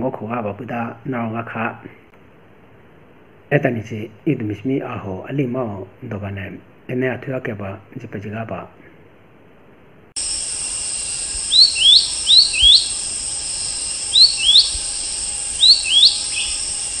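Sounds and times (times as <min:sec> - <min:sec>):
cricket trill: 0:10.2 - 0:17.0
rising bird chirps: 0:10.2 - 0:17.0.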